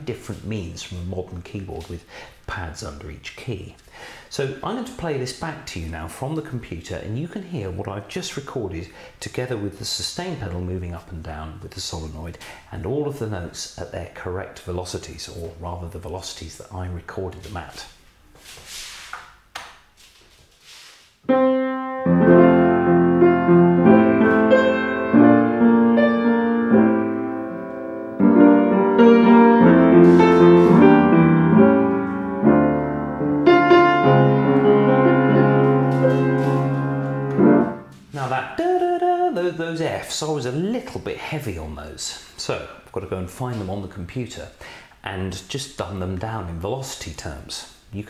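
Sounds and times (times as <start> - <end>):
self-playing piano melody: 21.3 - 38.0.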